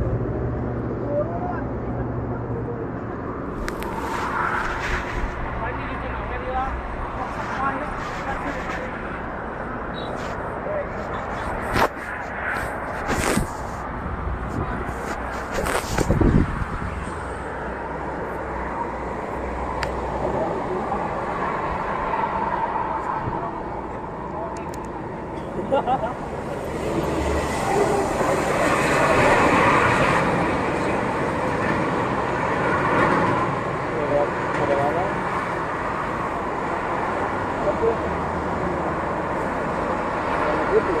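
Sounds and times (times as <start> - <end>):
road noise rush: 0.0 - 41.0.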